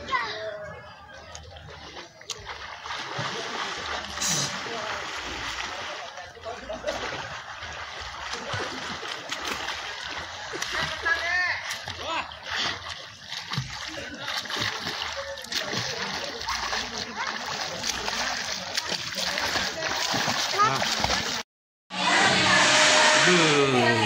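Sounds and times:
children splashing in pool: 1.5s - 21.4s.

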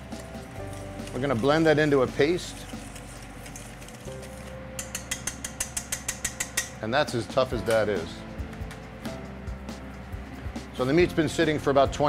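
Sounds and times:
utensil clicking against metal bowl: 4.8s - 6.8s.

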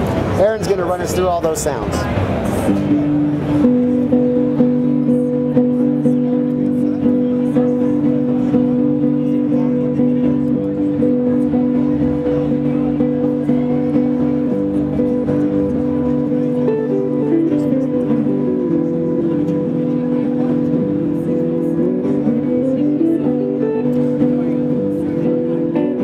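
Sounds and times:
electric guitar with delay: 0.0s - 26.0s.

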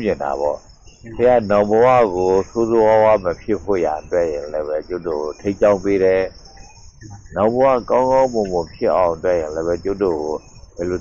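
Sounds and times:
man giving a sermon: 0.0s - 6.4s, 7.3s - 11.0s
high-pitched chirring: 0.0s - 11.0s.

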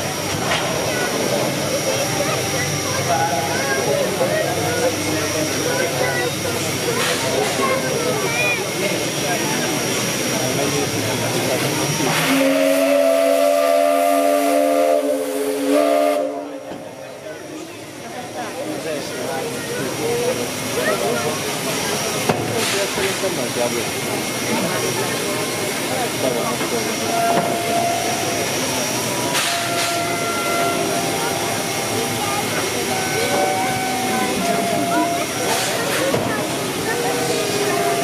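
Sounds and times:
steam hiss: 0.0s - 38.0s
steam locomotive whistle: 12.0s - 16.7s, 27.0s - 28.6s, 29.3s - 32.0s, 32.6s - 35.7s, 37.0s - 38.0s
burst of steam hiss: 21.4s - 38.0s.

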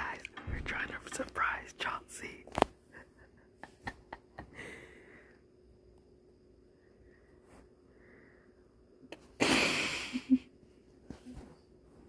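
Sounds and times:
girl whispering: 0.0s - 2.4s.

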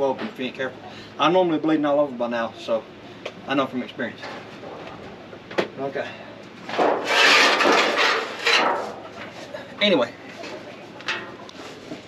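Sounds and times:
metal roofing sheet scraping: 6.7s - 9.4s.

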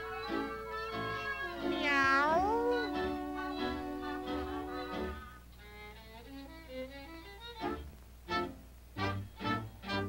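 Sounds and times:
orchestral cartoon music: 0.0s - 10.0s
cartoon cat meow: 1.2s - 4.6s.

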